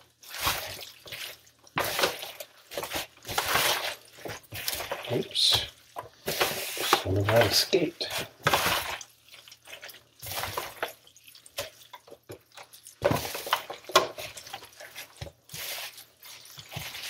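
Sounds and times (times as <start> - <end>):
wet squelching of meat: 0.0 - 17.0.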